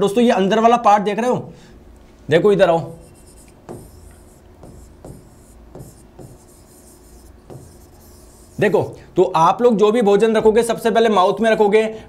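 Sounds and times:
stylus scratching on screen: 0:02.8 - 0:09.0.

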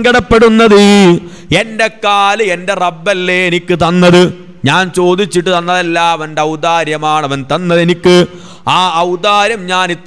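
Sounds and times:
man preaching into microphone: 0:00.0 - 0:10.0.

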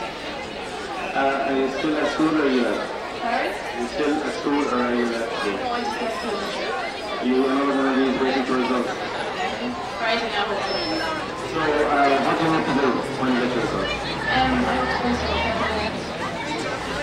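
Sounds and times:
chatter of people: 0:00.0 - 0:17.0
interview speech into microphone: 0:00.0 - 0:17.0.

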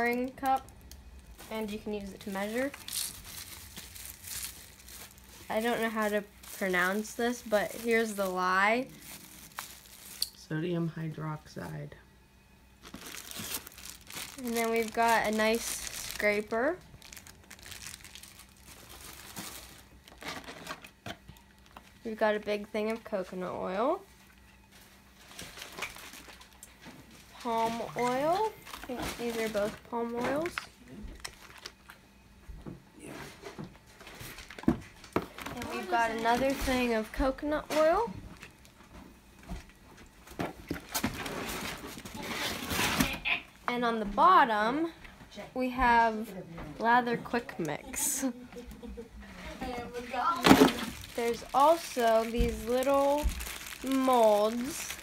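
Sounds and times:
plastic packaging crinkling: 0:00.0 - 0:10.4, 0:12.8 - 0:22.2, 0:24.2 - 0:32.0, 0:34.0 - 0:37.1, 0:50.2 - 0:55.0.

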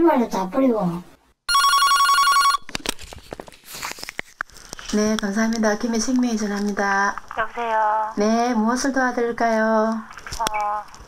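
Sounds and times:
telephone ringing: 0:01.5 - 0:02.6.

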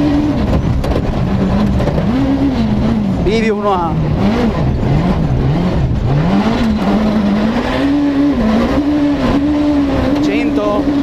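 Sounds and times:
rally car engine revving: 0:00.0 - 0:11.0
tyres rumbling on loose dirt: 0:00.0 - 0:11.0.

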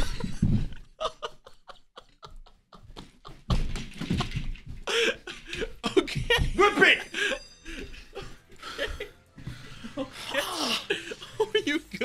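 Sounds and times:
breathless laughter: 0:00.0 - 0:06.5, 0:07.1 - 0:11.7
people landing on carpeted floor: 0:03.0 - 0:04.9.

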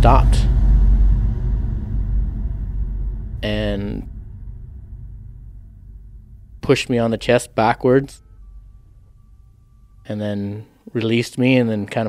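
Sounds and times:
low bass drone: 0:00.0 - 0:10.9.

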